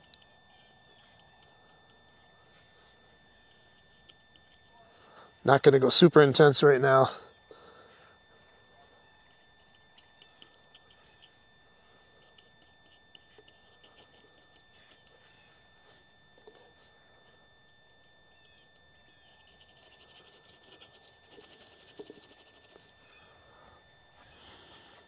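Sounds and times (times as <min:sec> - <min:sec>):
painting tool scratching canvas: 0:19.2 - 0:22.9.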